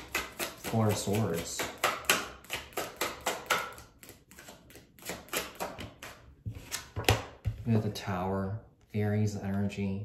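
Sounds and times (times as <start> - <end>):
cards being shuffled: 0.1 - 7.6.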